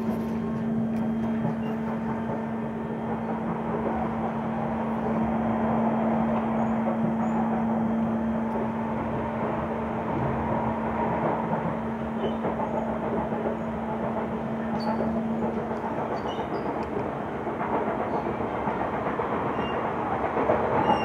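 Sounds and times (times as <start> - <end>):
train wheels rumbling on rail: 0.0 - 21.0.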